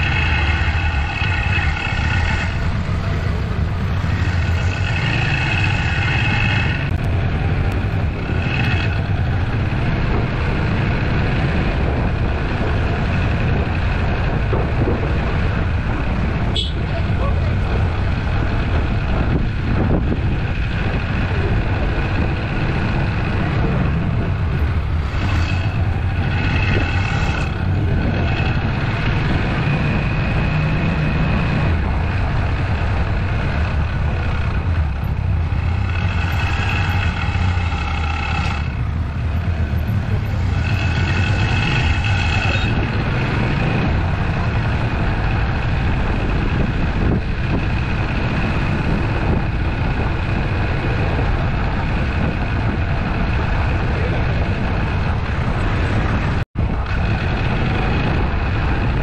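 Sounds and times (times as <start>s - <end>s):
vehicle engines rumbling: 0.0s - 59.0s.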